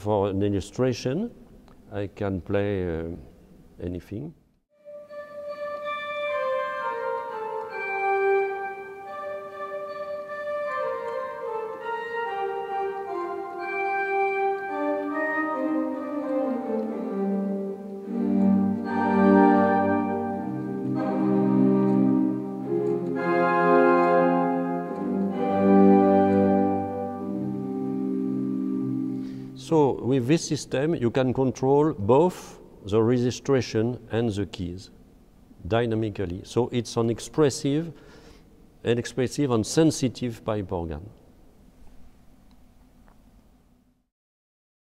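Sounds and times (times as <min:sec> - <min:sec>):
pipe organ playing slow piece: 0:04.8 - 0:34.9
low organ bass notes: 0:05.3 - 0:32.3.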